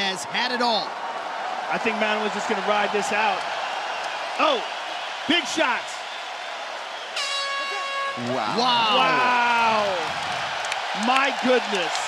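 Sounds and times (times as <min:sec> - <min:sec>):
crowd noise: 0:00.0 - 0:12.0
horn blast: 0:07.2 - 0:09.2.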